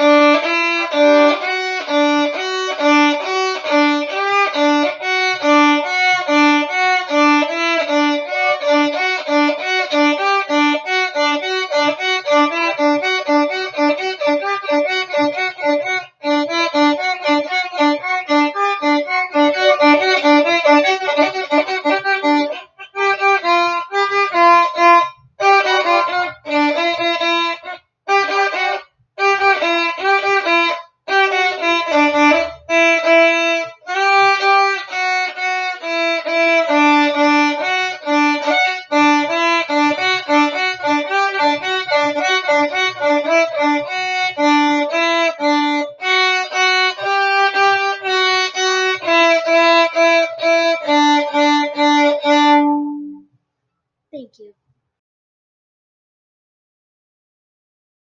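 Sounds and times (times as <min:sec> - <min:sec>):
solo violin: 0:00.0 - 0:53.3.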